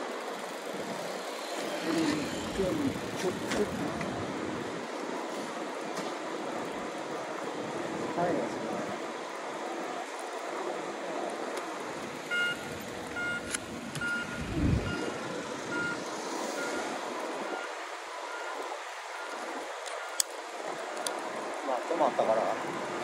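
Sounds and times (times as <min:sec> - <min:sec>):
road traffic noise: 0:00.0 - 0:23.0
electronic warning beeper: 0:12.3 - 0:17.7
deep low rumble: 0:14.4 - 0:15.1.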